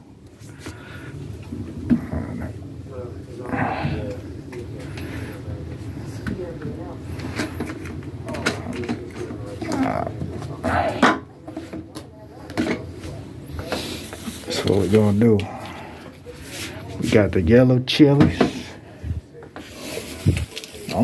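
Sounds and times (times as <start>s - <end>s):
murmur of voices: 0.4s - 21.0s.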